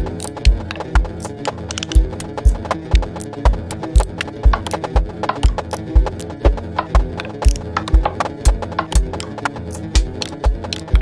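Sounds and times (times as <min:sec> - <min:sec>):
kick drum beat: 0:00.0 - 0:01.3, 0:02.0 - 0:09.2, 0:09.9 - 0:11.0
clicking percussion: 0:00.0 - 0:11.0
electronic music: 0:00.0 - 0:11.0
sustained synthesizer tones: 0:00.0 - 0:11.0.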